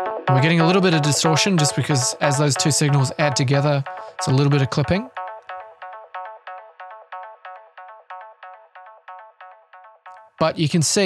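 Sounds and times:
synthesizer repeating short notes: 0:00.0 - 0:05.3.

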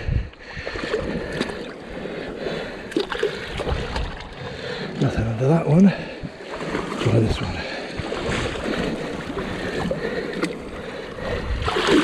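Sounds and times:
water sloshing and splashing: 0:00.3 - 0:12.0.

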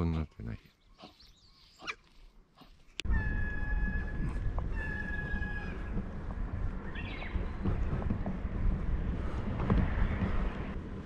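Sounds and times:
wind rushing over microphone: 0:03.0 - 0:11.0.

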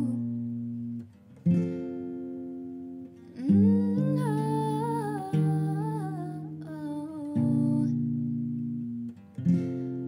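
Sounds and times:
woman singing wordless melody: 0:00.0 - 0:00.6, 0:03.3 - 0:08.4
acoustic guitar chords: 0:00.0 - 0:10.0.

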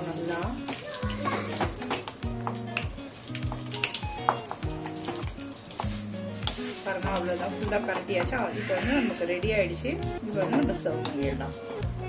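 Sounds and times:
background music: 0:00.0 - 0:12.0
gravy sizzling in a pan: 0:00.0 - 0:12.0
spatula scraping a pan: 0:05.7 - 0:09.4.

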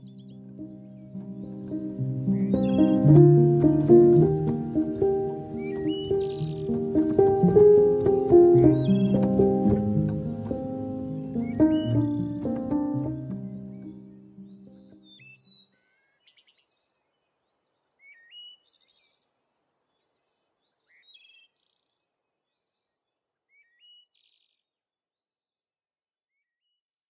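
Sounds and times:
background music sustained notes: 0:00.0 - 0:15.6
bird chirps: 0:00.0 - 0:19.3, 0:19.9 - 0:24.7.

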